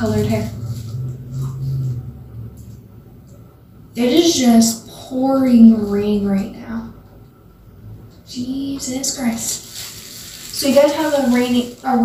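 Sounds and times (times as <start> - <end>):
heavy rain: 9.1 - 12.0.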